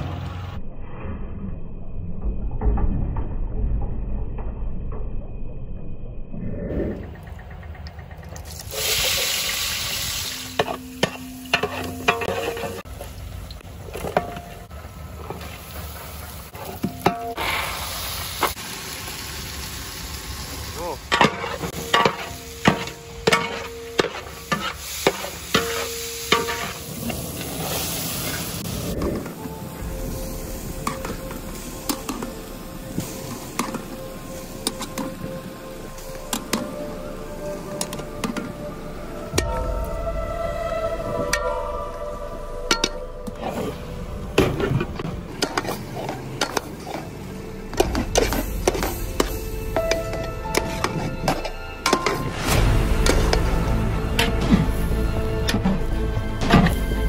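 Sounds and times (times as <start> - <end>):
vegetables sizzling: 8.4 - 13.3, 15.4 - 37.2
ladle scraping metal pot: 10.6 - 12.9
background music: 28.0 - 57.0.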